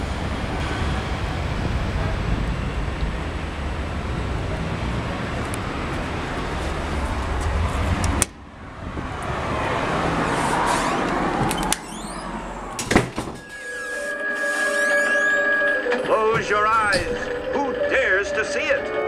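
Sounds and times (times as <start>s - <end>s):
street traffic noise: 0.0s - 19.0s.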